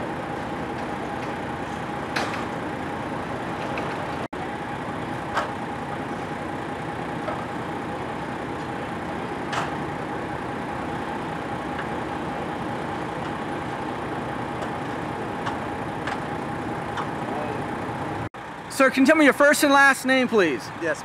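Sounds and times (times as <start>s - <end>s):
vehicle engine idling: 0.0s - 21.0s.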